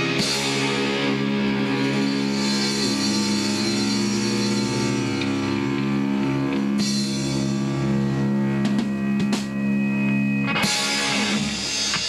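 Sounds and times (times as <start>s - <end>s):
drum kit: 0.0s - 12.0s
electric guitars playing chords: 0.0s - 12.0s.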